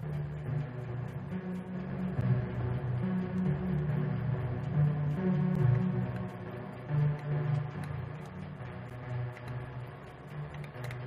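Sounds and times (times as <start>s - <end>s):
electronic beat over speakers: 0.0s - 11.0s.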